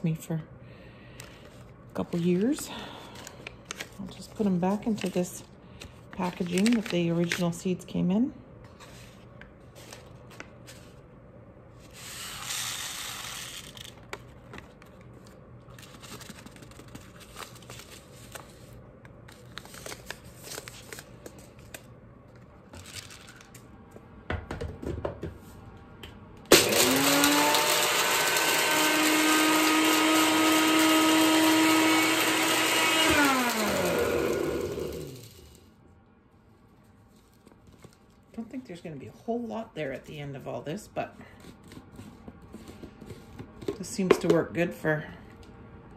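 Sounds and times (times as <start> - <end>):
rustling and handling sounds: 1.0 - 8.0, 8.6 - 11.1, 11.7 - 24.1, 36.3 - 39.2, 39.8 - 44.4
blender motor grinding: 26.5 - 35.6.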